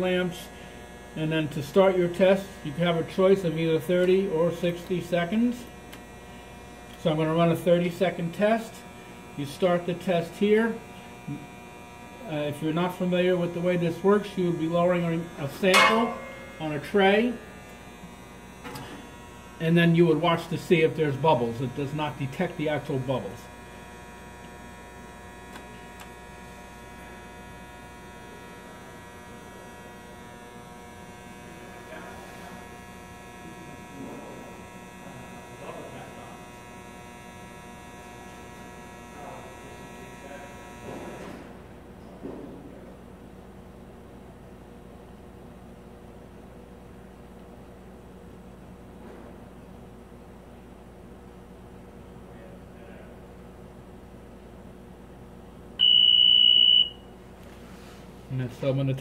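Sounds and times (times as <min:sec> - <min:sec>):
machine electrical hum and whine: 0:00.0 - 0:59.0
alarm high beep: 0:55.8 - 0:57.1.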